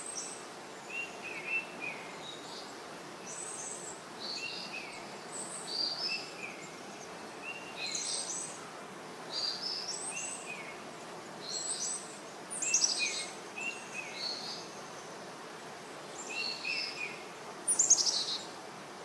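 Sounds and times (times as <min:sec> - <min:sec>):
background hiss: 0:00.0 - 0:19.0.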